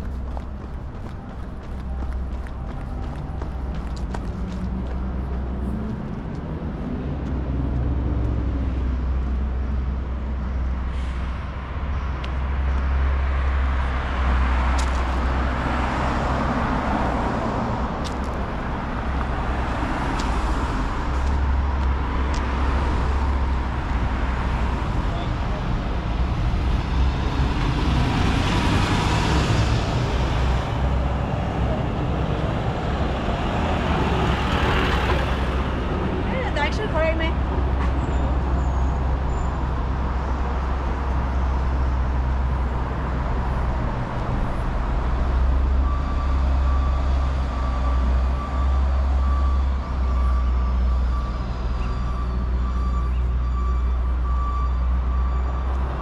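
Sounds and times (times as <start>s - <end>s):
traffic rumble: 0.0s - 56.0s
vehicles passing: 0.0s - 56.0s
truck reversing beeps: 43.3s - 56.0s.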